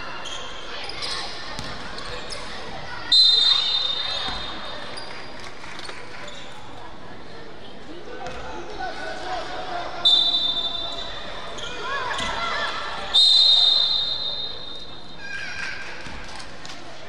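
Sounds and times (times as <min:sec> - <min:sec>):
referee's whistle blasts: 0:03.1 - 0:04.3, 0:10.0 - 0:11.2, 0:13.1 - 0:14.9.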